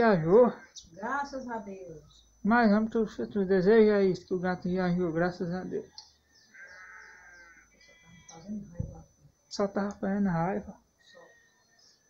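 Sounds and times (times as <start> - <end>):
faint drawn-out animal cry: 6.5 - 8.6, 11.0 - 11.8.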